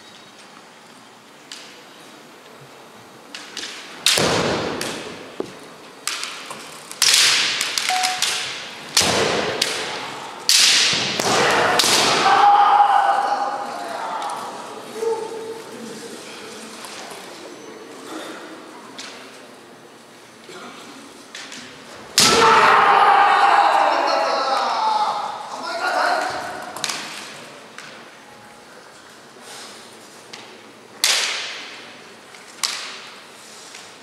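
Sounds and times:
bamboo sword strikes: 7.0s - 12.2s
fencers shouting: 11.2s - 15.5s, 22.2s - 26.7s.

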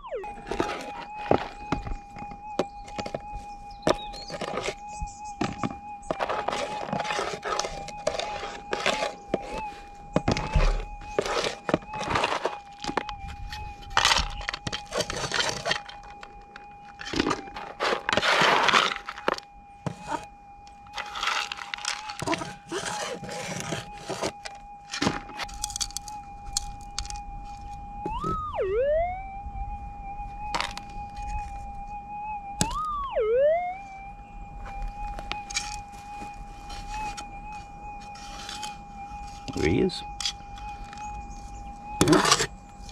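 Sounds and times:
crushed rock rattling and scraping: 0.3s - 20.2s, 20.9s - 27.2s
metal detector threshold tone: 32.2s - 42.9s
metal detector target signal: 36.7s - 42.9s.

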